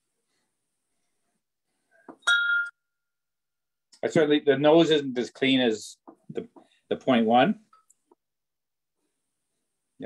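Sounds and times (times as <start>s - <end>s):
glass clinking: 2.1s - 2.8s.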